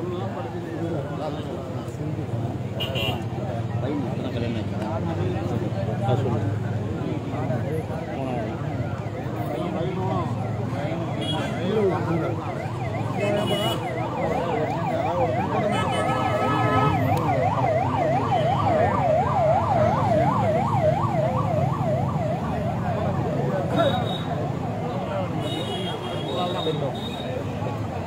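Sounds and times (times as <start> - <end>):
crowd murmuring: 0.0 - 28.0
emergency siren warbling: 6.8 - 25.4.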